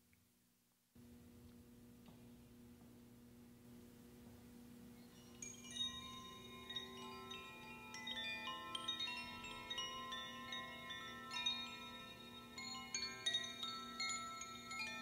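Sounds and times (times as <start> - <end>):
tube chimes tinkling: 5.0 - 15.0.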